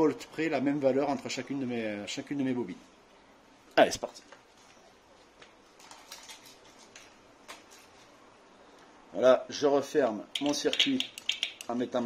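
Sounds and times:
metal parts clicking and tapping: 10.4 - 11.8.

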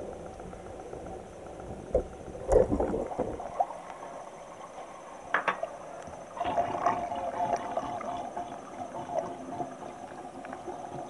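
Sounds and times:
drain gurgling: 1.9 - 11.0.

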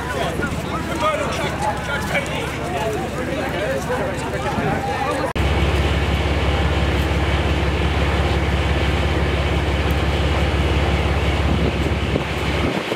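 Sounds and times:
steady low rumble: 0.0 - 12.9.

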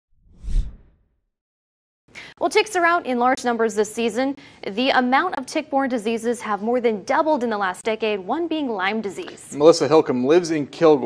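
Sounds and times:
whoosh sound effect: 0.2 - 1.0.

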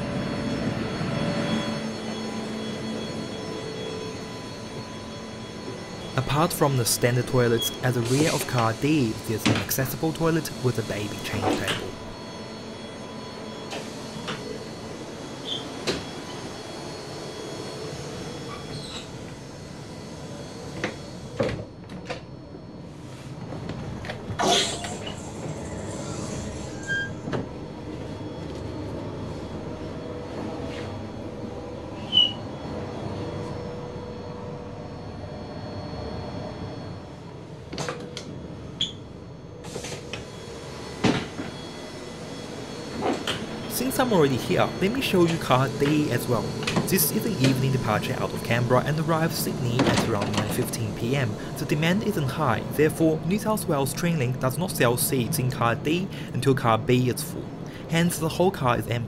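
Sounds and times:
train running noise: 0.0 - 59.0.

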